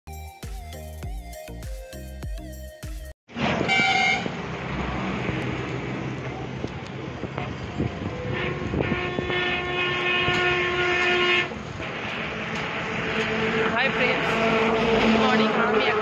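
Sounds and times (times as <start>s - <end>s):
vehicle horn blast: 3.6s - 4.4s, 8.0s - 11.6s.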